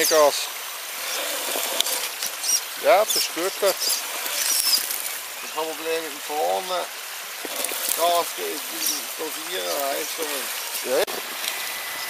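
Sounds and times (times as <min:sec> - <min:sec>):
running water hiss: 0:00.0 - 0:12.0.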